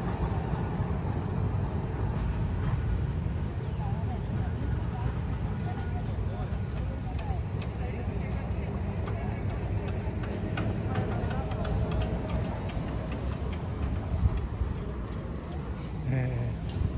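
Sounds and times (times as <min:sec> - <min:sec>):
distant voices: 0:00.0 - 0:16.9.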